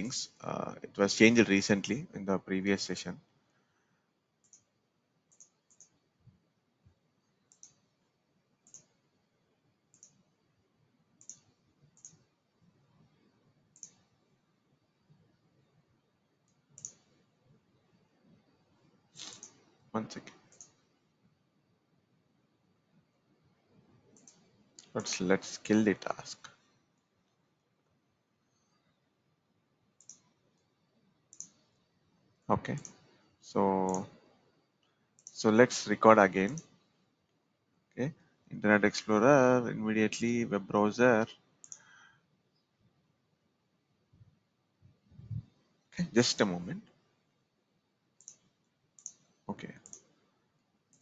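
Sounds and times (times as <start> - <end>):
computer mouse clicks: 4.4 - 4.7, 5.3 - 6.0, 7.2 - 8.0, 8.6 - 9.0, 9.9 - 10.3, 11.2 - 12.3, 13.7 - 14.2, 16.4 - 17.3, 19.2 - 20.9, 24.1 - 25.1, 30.0 - 30.7, 31.3 - 31.9, 32.7 - 33.2, 33.8 - 34.1, 34.8 - 35.4, 36.4 - 37.4, 41.6 - 42.0, 48.2 - 50.2.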